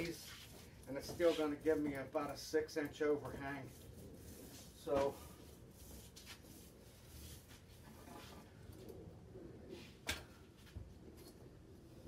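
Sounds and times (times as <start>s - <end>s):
wooden strips rubbing: 0.0s - 2.5s, 3.1s - 8.5s.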